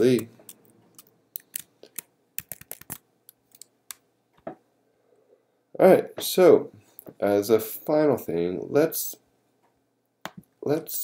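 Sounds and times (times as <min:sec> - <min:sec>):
computer keyboard clicks: 0:02.4 - 0:03.0.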